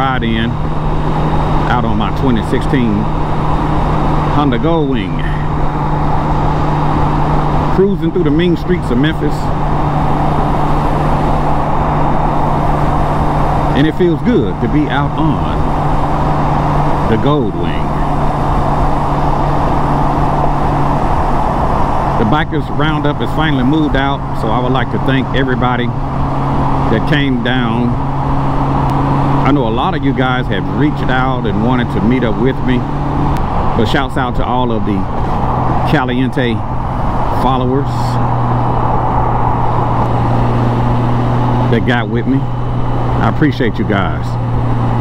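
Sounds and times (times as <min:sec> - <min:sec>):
motorcycle engine hum: 0:00.0 - 0:45.0
motorcycle road noise: 0:00.0 - 0:45.0.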